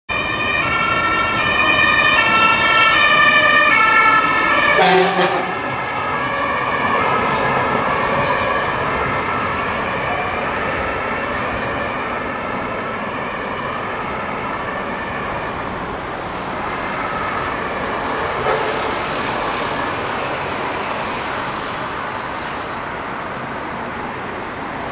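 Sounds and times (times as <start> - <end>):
fire engine siren and horn: 0.1 - 21.3
street traffic: 0.1 - 24.9.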